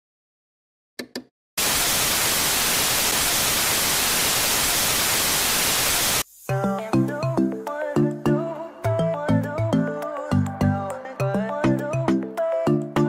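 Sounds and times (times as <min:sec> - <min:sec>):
television static hiss: 0:01.6 - 0:06.9.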